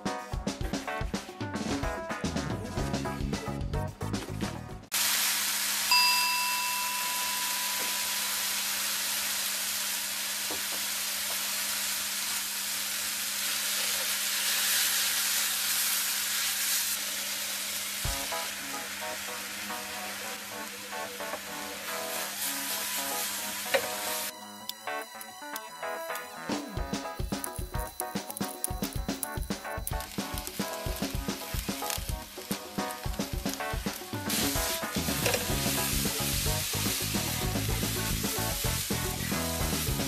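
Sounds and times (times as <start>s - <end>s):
background music: 0.0s - 4.9s, 18.1s - 40.0s
food sizzling in a frying pan: 4.9s - 40.0s
metallic ding: 5.9s - 8.5s.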